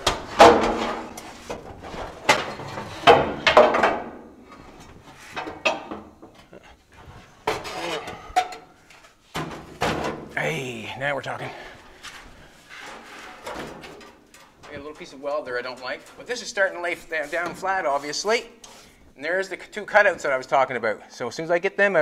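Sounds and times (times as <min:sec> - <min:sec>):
sheet metal knocking and scraping: 0:00.0 - 0:06.4.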